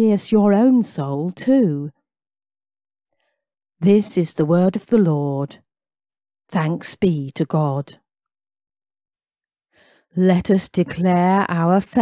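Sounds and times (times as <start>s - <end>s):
person speaking: 10.2s - 12.0s.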